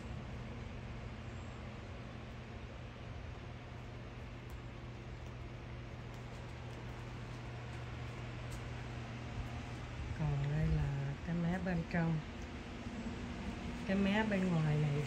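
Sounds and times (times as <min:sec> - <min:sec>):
electric fan motor hum: 0:00.0 - 0:15.0.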